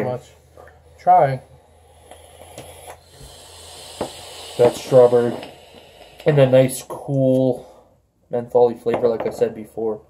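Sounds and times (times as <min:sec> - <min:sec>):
breathy exhale of vapour: 0:01.6 - 0:06.6.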